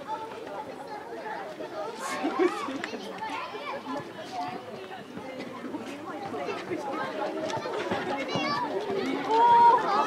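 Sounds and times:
chatter of voices: 0.0 - 10.0
children shouting: 7.2 - 10.0.

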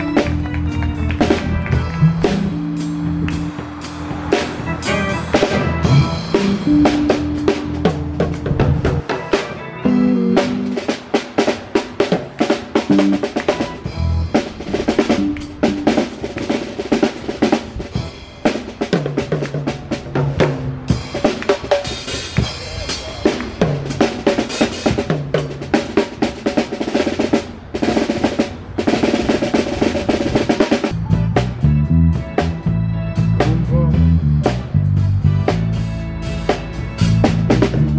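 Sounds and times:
drum kit solo: 0.0 - 37.9.

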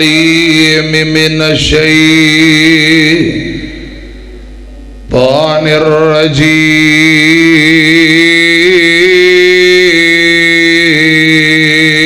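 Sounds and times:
man chanting through a microphone: 0.0 - 4.0, 5.1 - 12.0
steady electrical hum: 0.0 - 12.0.

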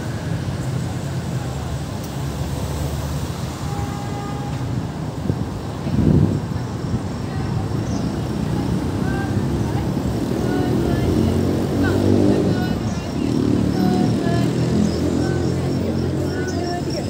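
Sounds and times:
traffic passing: 0.0 - 17.0
voices of passers-by: 0.0 - 17.0.

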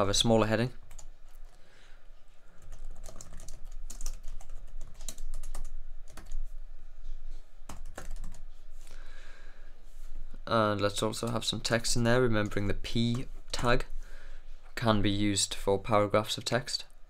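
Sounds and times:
typing on computer keyboard: 2.6 - 6.4, 7.7 - 8.4.

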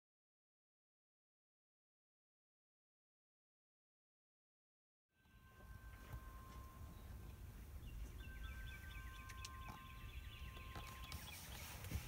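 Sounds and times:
faint birdsong: 5.2 - 12.0.

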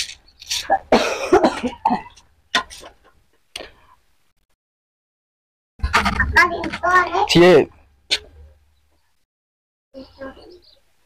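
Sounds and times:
person coughing: 0.9 - 2.2.

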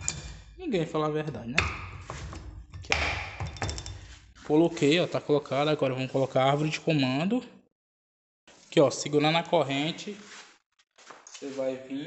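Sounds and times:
metal scrape: 0.0 - 0.7, 1.7 - 5.2
metal cylinder head contact: 1.6 - 4.5.

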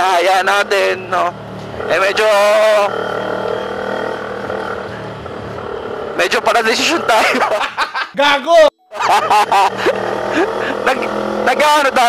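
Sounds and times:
motorcycle engine cruising: 0.0 - 7.8, 9.0 - 12.0.

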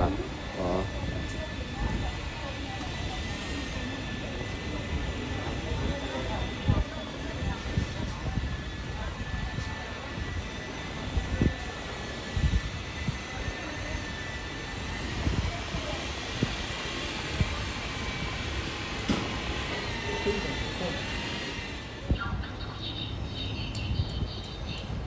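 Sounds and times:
distant urban hum: 0.0 - 25.0.

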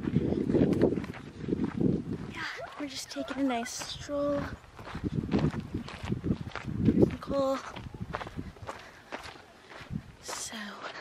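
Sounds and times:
footsteps on dirt trail: 0.0 - 11.0.

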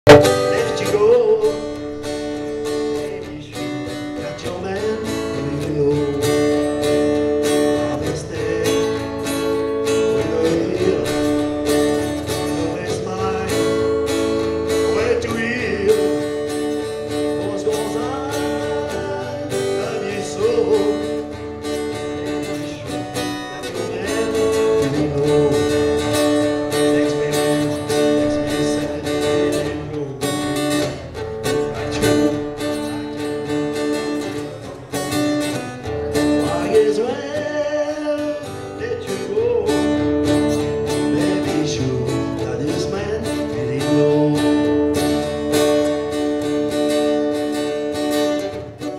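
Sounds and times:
acoustic guitar strummed and picked: 0.0 - 48.9.

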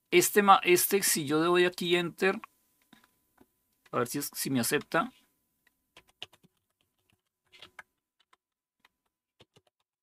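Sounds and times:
computer keyboard keystrokes: 6.0 - 9.9.

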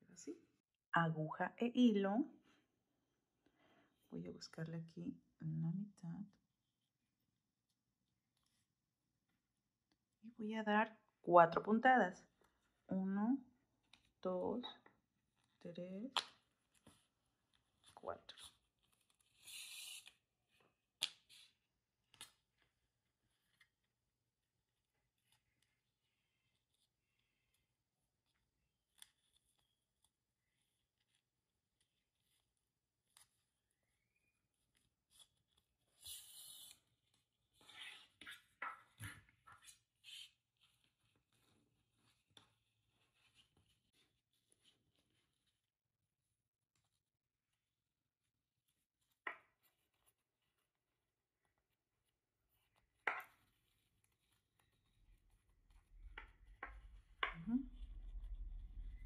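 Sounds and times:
thread drawn through ribbon: 17.8 - 20.3
ribbon rustling and tapping: 34.1 - 57.6
low hum: 55.7 - 59.0.

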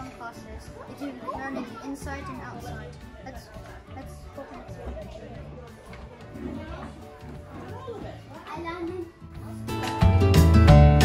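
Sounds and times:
children chattering: 0.0 - 10.1
background music: 0.0 - 11.0.

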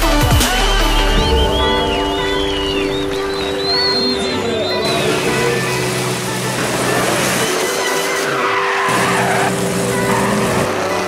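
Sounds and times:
background music: 0.0 - 11.0
car engine revving: 0.1 - 11.0
tyres squealing: 1.8 - 11.0.

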